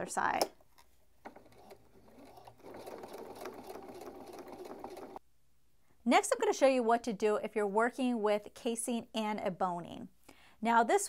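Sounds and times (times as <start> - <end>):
sewing machine stitching: 1.2 - 5.2.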